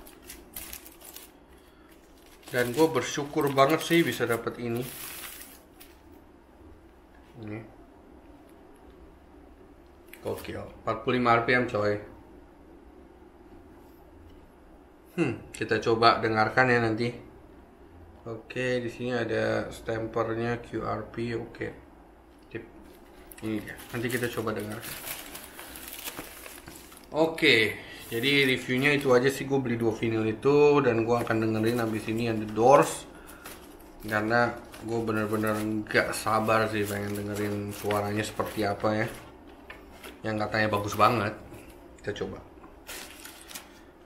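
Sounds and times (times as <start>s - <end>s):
paper sleeve rustling: 0.0s - 6.0s, 22.8s - 29.5s, 31.0s - 41.3s, 42.8s - 43.9s.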